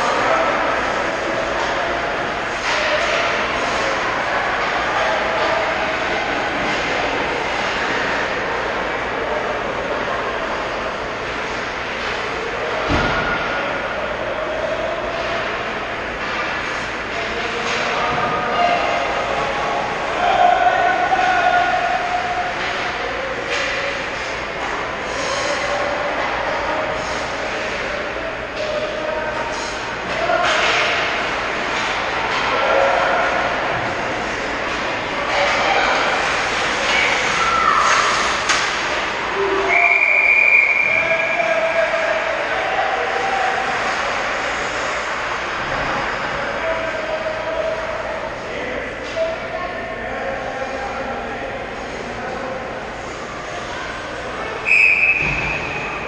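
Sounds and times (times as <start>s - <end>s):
players and spectators shouting: 18.3s - 24.6s, 25.4s - 50.0s.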